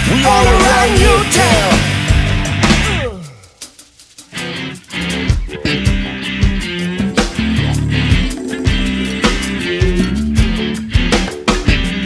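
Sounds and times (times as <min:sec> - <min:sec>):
rock band playing: 0:00.0 - 0:03.3, 0:04.2 - 0:12.0.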